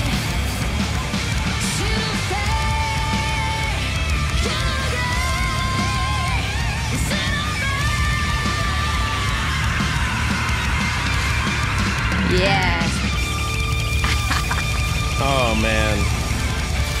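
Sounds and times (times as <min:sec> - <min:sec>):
live heavy metal music: 0:00.0 - 0:17.0.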